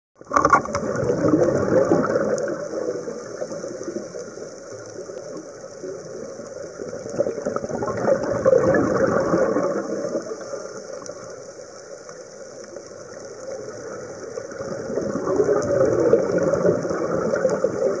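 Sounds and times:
underwater breath bubbles: 0:00.2 - 0:11.4, 0:13.6 - 0:18.0.

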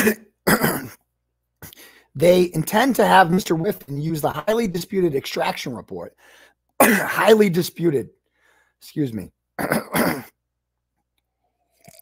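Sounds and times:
man coughing: 0:00.0 - 0:01.0, 0:06.8 - 0:07.4, 0:09.6 - 0:10.4.

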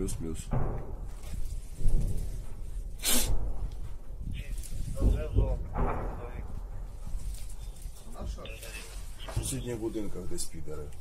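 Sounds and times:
man speaking: 0:00.0 - 0:00.6, 0:08.0 - 0:11.0
steady low rumble: 0:00.0 - 0:11.0.

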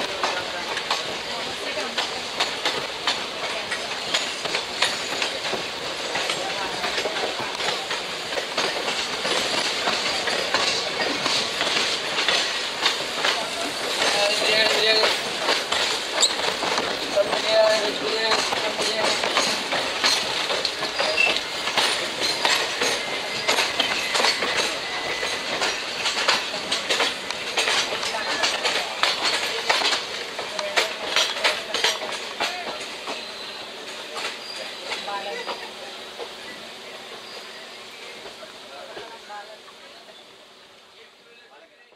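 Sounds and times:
train wheels clattering over rails: 0:00.0 - 0:39.8
wheel squeals: 0:16.1 - 0:16.6, 0:18.9 - 0:26.4, 0:32.6 - 0:35.7.

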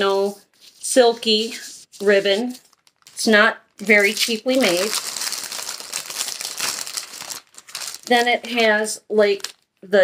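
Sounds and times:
crinkly packaging rustling: 0:02.0 - 0:09.9.

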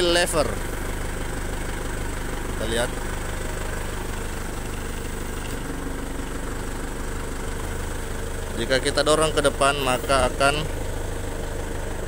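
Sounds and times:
forklift engine idling: 0:00.0 - 0:12.0.

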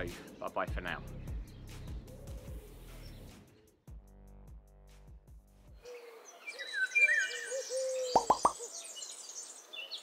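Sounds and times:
birds chirping and trilling: 0:00.0 - 0:03.8, 0:05.8 - 0:10.0
loud plops: 0:08.2 - 0:08.6.

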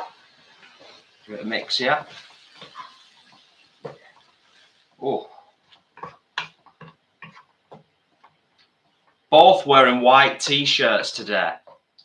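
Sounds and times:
wooden spoon scraping a pan: 0:00.0 - 0:09.1.

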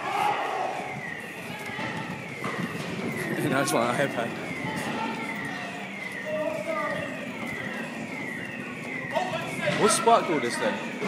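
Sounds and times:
emergency vehicle siren wailing: 0:00.0 - 0:11.0
faint street voices: 0:00.0 - 0:11.0.

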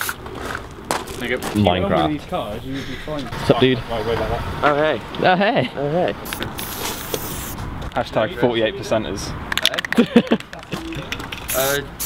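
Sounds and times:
spray paint can hissing: 0:00.0 - 0:00.2, 0:06.2 - 0:07.6, 0:11.0 - 0:12.0.

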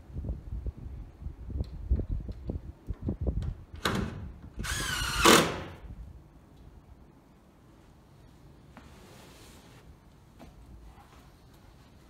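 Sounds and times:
power drill whining: 0:04.6 - 0:05.7.

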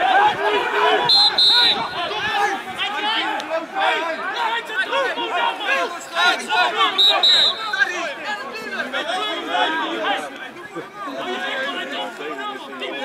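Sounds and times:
overlapping voices: 0:00.0 - 0:13.0.

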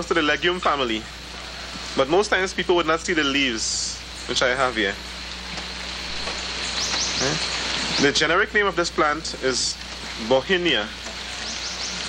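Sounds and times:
steady outdoor hiss: 0:00.0 - 0:12.0
low vocal murmur: 0:07.2 - 0:07.5.

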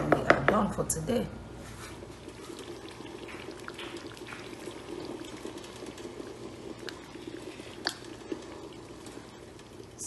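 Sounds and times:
stew bubbling in a pot: 0:01.4 - 0:10.0.

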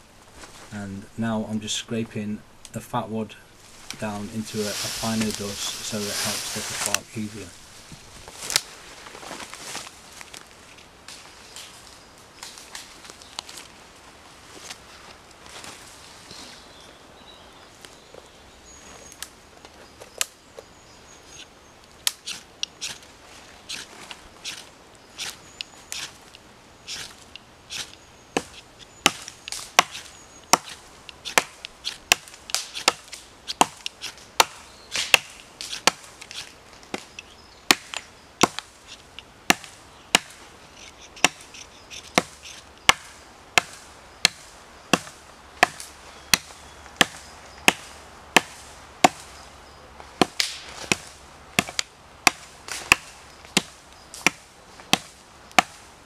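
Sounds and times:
striker rasping on ferro rod: 0:26.9 - 0:29.2, 0:29.8 - 0:34.2.

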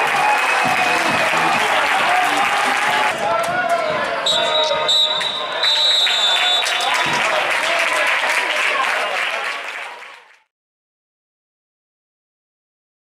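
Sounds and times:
players and spectators shouting: 0:00.0 - 0:09.2
referee's whistle long blast: 0:04.2 - 0:07.2
clapping: 0:06.0 - 0:10.5.

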